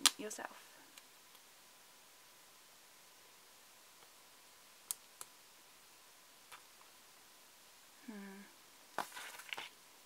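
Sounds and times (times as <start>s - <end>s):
woman humming: 8.0s - 8.6s
paper crackling: 9.0s - 9.7s.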